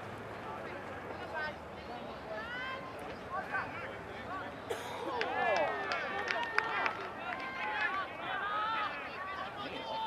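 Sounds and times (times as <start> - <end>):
outdoor murmur: 0.0 - 10.0.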